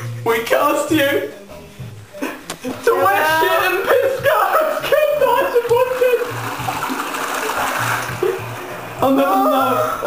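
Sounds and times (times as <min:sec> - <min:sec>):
toilet flushing: 0:03.4 - 0:10.0.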